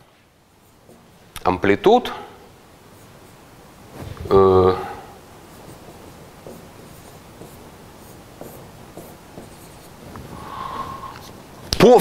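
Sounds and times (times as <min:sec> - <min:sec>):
marker scratching on whiteboard: 0:05.4 - 0:10.1.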